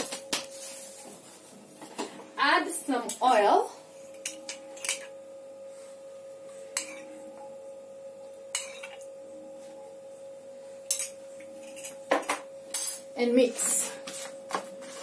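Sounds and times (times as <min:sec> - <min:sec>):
faint steady hum: 0:00.0 - 0:15.0
metal spoon clinking on mug: 0:10.9 - 0:13.1.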